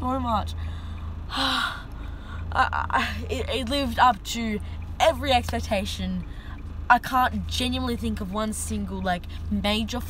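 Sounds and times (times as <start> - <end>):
low rumble of car cabin: 0.0 - 10.0.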